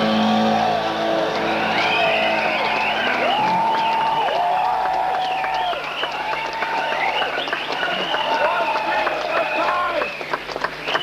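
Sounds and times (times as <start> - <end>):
long held high notes bending: 0.0 - 5.9.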